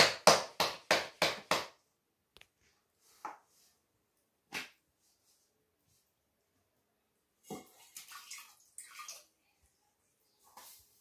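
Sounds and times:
hands patting dough: 0.0 - 1.9.

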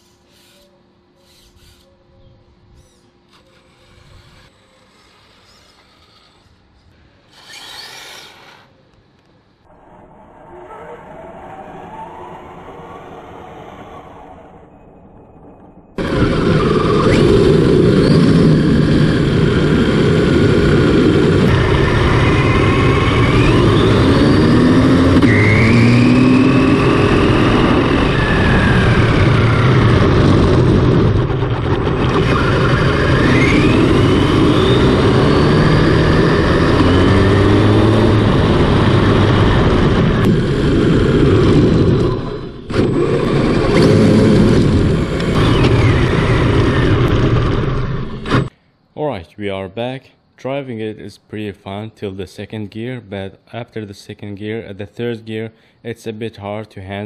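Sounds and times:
road and wind noise: 2.1 - 4.6, 8.9 - 48.5
electric motor whine: 2.8 - 8.8, 16.0 - 48.5.

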